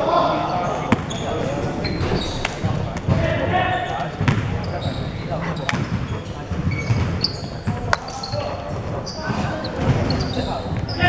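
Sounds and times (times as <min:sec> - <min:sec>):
indistinct chatter: 0:00.0 - 0:11.0
basketball bouncing: 0:04.1 - 0:05.0, 0:05.6 - 0:08.9.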